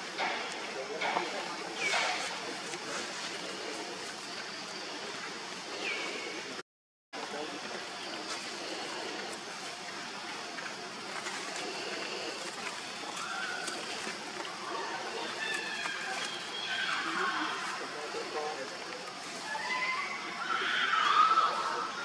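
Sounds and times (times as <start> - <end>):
outdoor background hiss: 0.0 - 6.6, 7.2 - 22.0.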